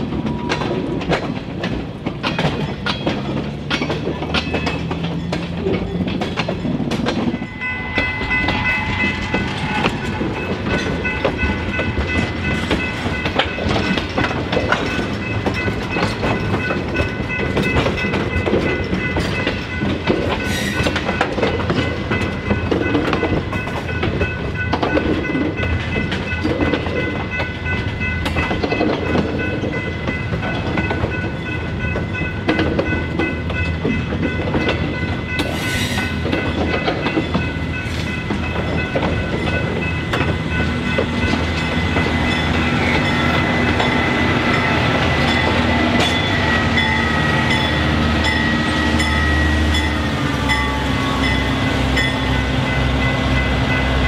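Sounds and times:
train passing: 0.0 - 54.0
wheels clattering over rail joints: 0.0 - 54.0.

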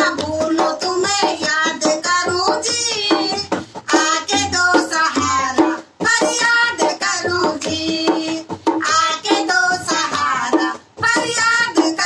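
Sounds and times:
hand drum: 0.0 - 12.0
women singing devotional song: 0.0 - 12.0.

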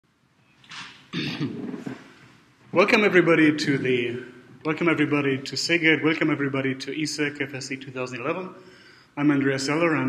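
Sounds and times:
man clearing throat: 1.1 - 2.1
man speaking: 2.7 - 10.0
man breathing: 8.6 - 9.2.

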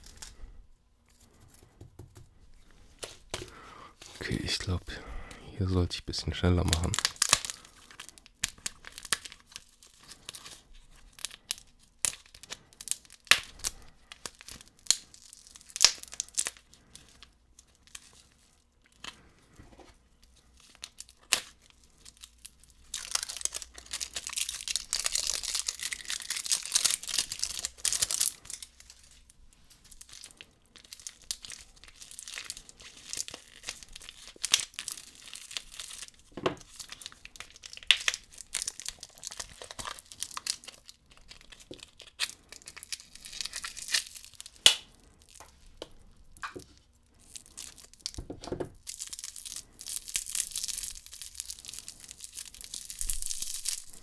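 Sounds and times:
plastic packaging crinkling and tearing: 0.0 - 0.5, 2.6 - 54.0.

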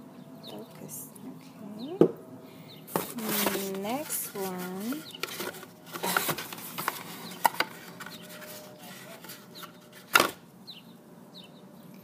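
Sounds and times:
cardboard rustling and scraping: 2.9 - 10.4.

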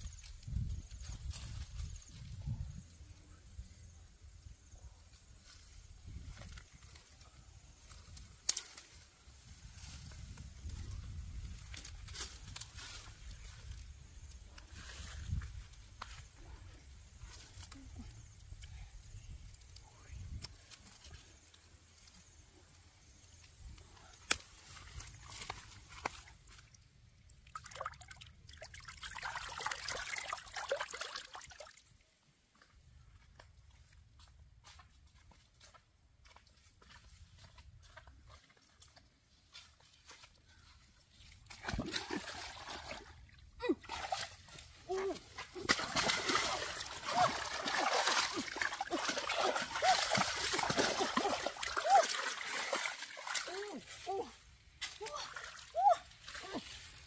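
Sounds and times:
water splashing and sloshing: 24.3 - 32.0, 41.2 - 57.0.

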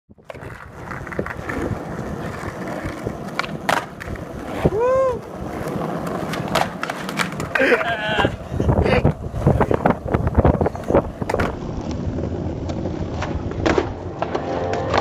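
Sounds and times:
skateboard wheels on rough asphalt: 0.1 - 15.0
skateboard clacks: 0.2 - 15.0
person calling loudly: 7.6 - 9.1.

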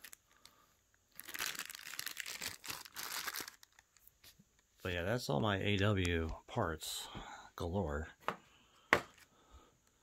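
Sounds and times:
plastic bags crinkling: 0.0 - 4.4.

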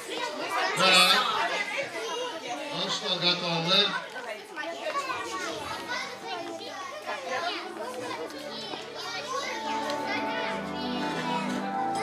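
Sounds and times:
children chattering and calling out: 0.0 - 12.0
held musical notes: 8.8 - 12.0.

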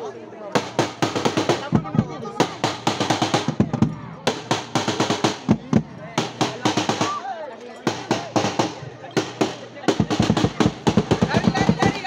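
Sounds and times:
drums struck with sticks: 0.5 - 7.2, 7.8 - 12.0
voices shouting: 6.2 - 12.0.

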